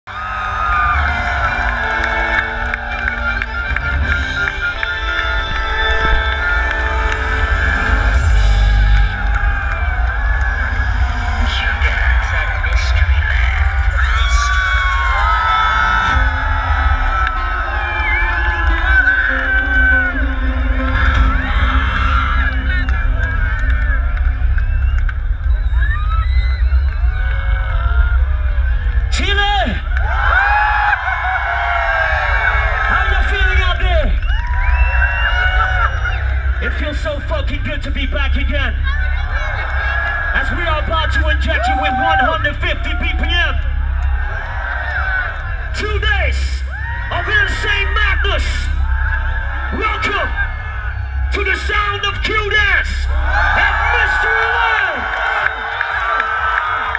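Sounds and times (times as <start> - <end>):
crowd shouting and whooping: 0.0 - 56.9.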